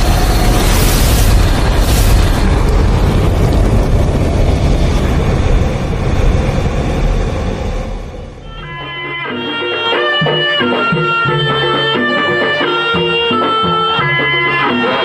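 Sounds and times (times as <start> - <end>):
deep rumbling explosion roar: 0.0 - 8.4.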